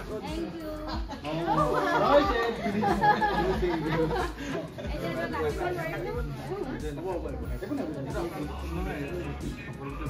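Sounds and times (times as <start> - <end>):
people talking in a group: 0.0 - 10.0.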